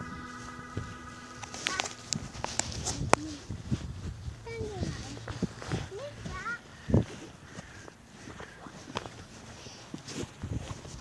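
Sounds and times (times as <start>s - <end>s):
footsteps on wet muddy grass: 0.0s - 11.0s.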